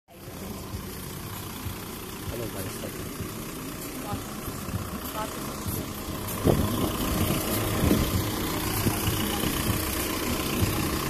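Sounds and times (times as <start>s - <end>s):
car engines idling: 0.1s - 11.0s.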